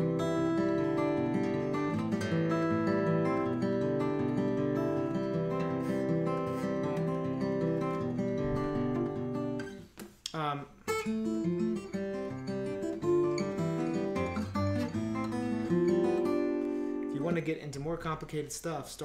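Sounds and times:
fingerpicked acoustic guitar: 0:00.0 - 0:17.7.

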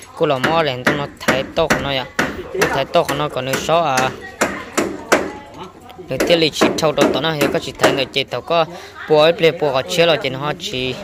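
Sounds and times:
sharp knocks: 0:00.3 - 0:05.4, 0:06.2 - 0:08.1.

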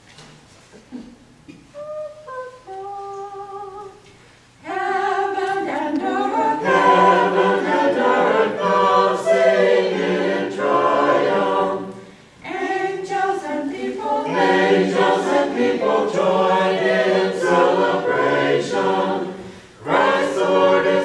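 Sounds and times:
choir singing a cappella: 0:04.6 - 0:21.0.

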